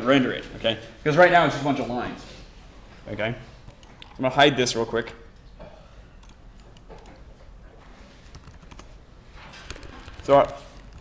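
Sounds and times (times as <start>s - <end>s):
keyboard and mouse clicks: 6.2s - 7.2s, 8.2s - 9.0s, 9.6s - 11.0s.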